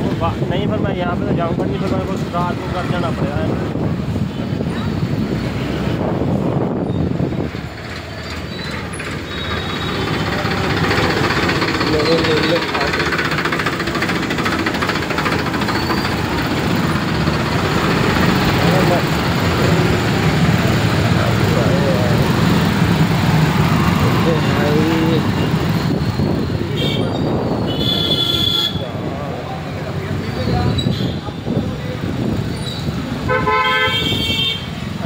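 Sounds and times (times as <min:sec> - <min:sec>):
crowd voices: 0:00.0 - 0:33.3
road and wind noise: 0:00.0 - 0:35.0
engines running: 0:04.9 - 0:28.3
vehicle horn: 0:26.7 - 0:28.9, 0:33.2 - 0:34.8.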